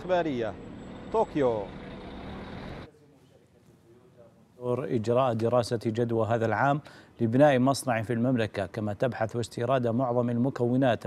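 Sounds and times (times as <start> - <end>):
city street traffic: 0.0 - 4.2.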